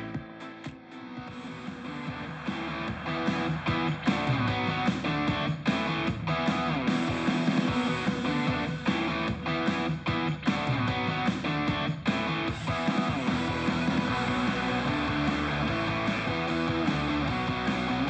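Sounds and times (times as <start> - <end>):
rock music through speaker: 0.0 - 18.0.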